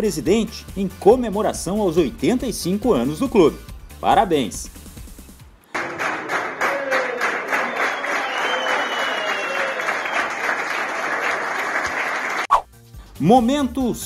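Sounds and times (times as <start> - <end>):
group of people clapping: 5.7 - 12.5.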